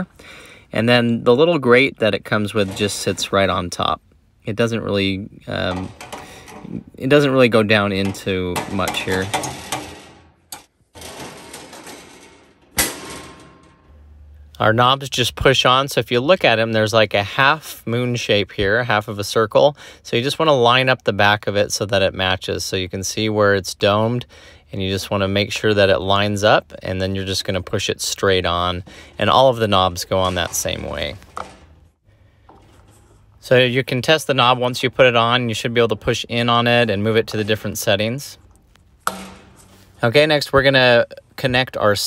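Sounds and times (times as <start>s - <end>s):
faint handling noise: 1.0s - 14.1s, 28.8s - 42.0s
metal lid clanking shut: 5.6s - 6.8s, 8.0s - 13.9s, 39.0s - 39.7s.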